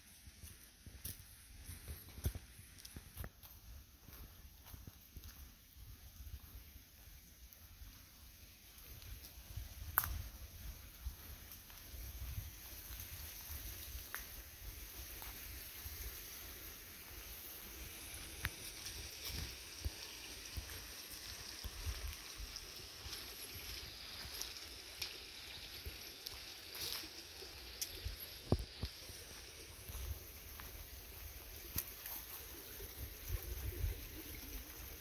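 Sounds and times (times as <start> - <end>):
faint hiss: 0.0 - 35.0
soft footsteps on dirt path: 0.0 - 35.0
light ticks and snaps: 9.8 - 10.2.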